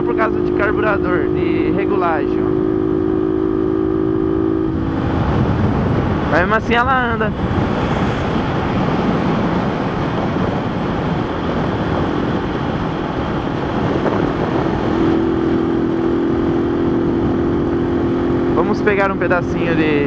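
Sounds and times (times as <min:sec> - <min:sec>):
motorcycle engine cruising: 0:00.0 - 0:20.0
wind rushing over microphone: 0:00.0 - 0:20.0.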